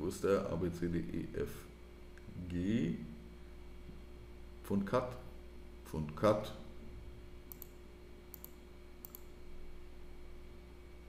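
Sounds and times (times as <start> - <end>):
faint steady hum: 0.0 - 11.0
computer mouse clicks: 7.5 - 9.3.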